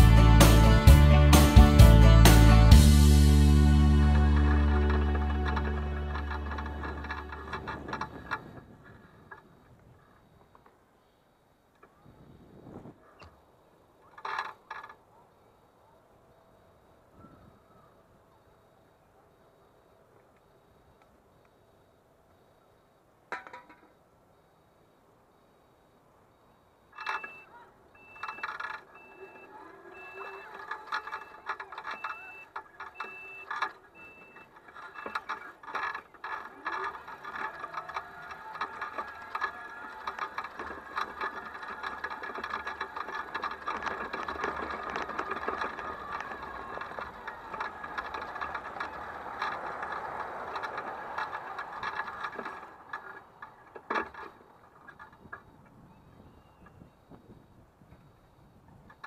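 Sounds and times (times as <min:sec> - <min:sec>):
scooter rattling over grass: 0:00.0 - 0:10.8, 0:14.0 - 0:15.2, 0:26.9 - 0:59.0
electric motor whining: 0:02.0 - 0:09.3, 0:28.2 - 0:54.3
reversing beeper short beeps: 0:27.0 - 0:35.3.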